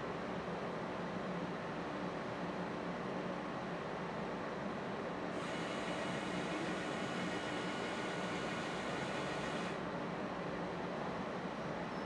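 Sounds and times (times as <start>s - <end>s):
constant machine hiss: 0.1s - 11.9s
machine motor whine: 5.4s - 9.8s.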